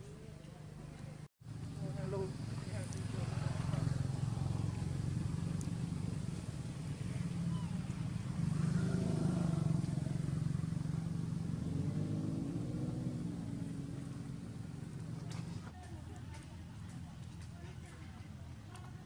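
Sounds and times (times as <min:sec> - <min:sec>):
low engine rumble: 0:00.0 - 0:19.0.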